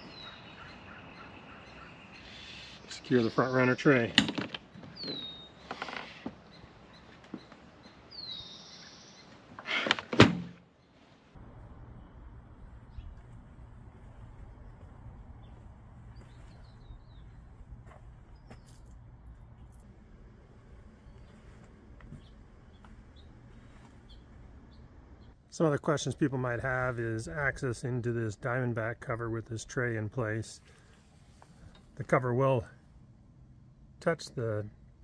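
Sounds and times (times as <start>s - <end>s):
small birds chirping: 0.0s - 3.9s, 4.7s - 9.5s, 12.0s - 19.9s, 20.6s - 25.4s
steady low hum: 11.4s - 27.8s.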